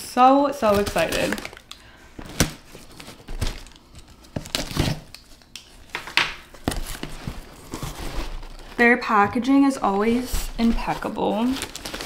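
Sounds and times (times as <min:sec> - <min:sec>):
cardboard and foil crinkling: 0:00.6 - 0:12.0
tape tearing: 0:10.2 - 0:12.0.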